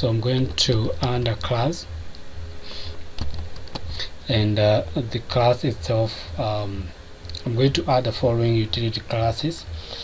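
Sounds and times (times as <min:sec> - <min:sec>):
computer keyboard keystrokes: 0:03.2 - 0:03.9.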